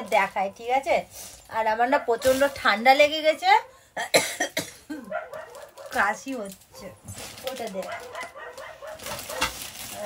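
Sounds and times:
woman's voice: 0.0s - 3.7s, 5.9s - 8.1s
short coughs: 4.0s - 5.1s.

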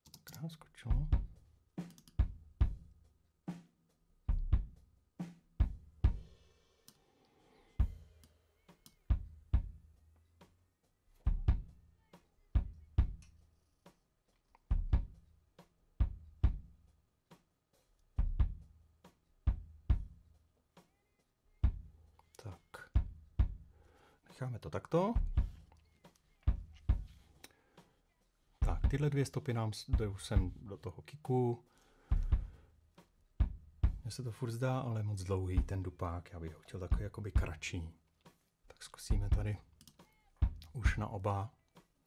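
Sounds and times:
kick drum thumps: 40.4s - 41.0s.

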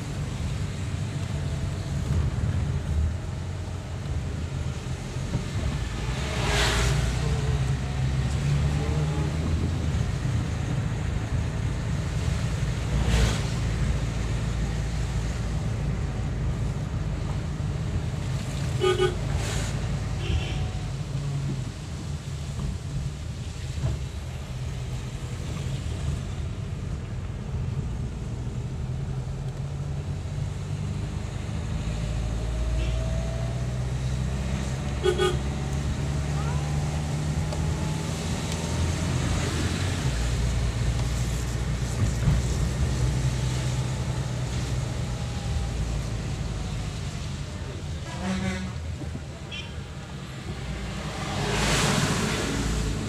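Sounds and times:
road noise: 0.0s - 53.0s
vehicle engine drone: 0.0s - 53.0s
car horn toot: 18.8s - 19.2s, 35.0s - 35.4s.

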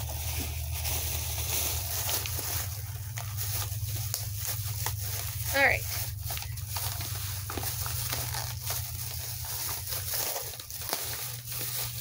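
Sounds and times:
plastic bag rustling: 0.0s - 12.0s
steady low hum: 0.0s - 12.0s.

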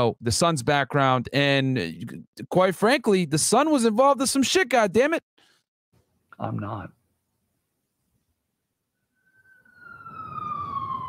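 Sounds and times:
emergency siren wailing: 9.2s - 11.0s.

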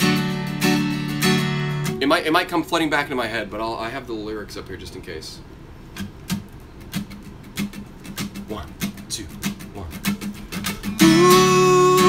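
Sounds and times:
acoustic guitar strums: 0.0s - 2.8s, 5.9s - 12.0s.

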